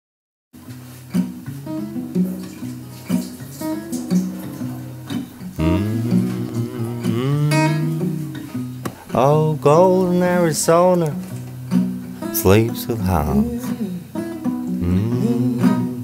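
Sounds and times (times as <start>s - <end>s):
acoustic guitar picking notes: 0.6s - 16.0s
sustained low tone: 5.6s - 8.4s, 14.8s - 15.6s.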